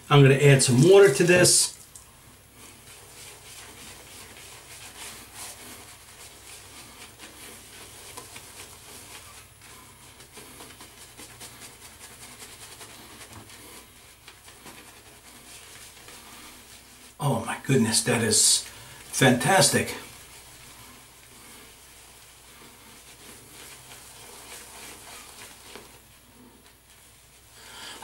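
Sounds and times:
lather crackling: 0.7 - 17.2, 17.8 - 27.9
shaving brush rubbing on stubble: 2.5 - 17.2, 17.9 - 27.5.

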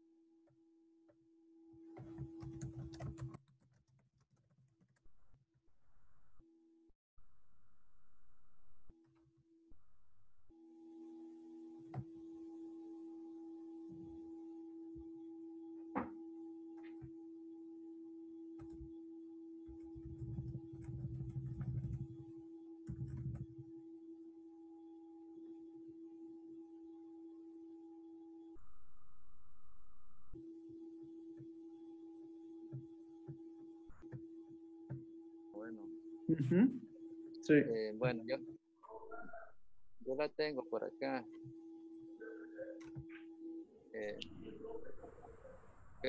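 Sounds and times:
faint electronic hum: 7.2 - 9.0, 9.7 - 46.0.

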